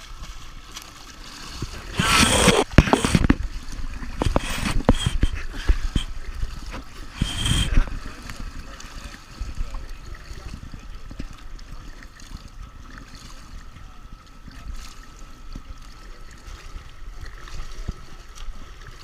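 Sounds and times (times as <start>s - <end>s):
pool water splashing: 0.0s - 19.0s
water lapping: 0.0s - 19.0s.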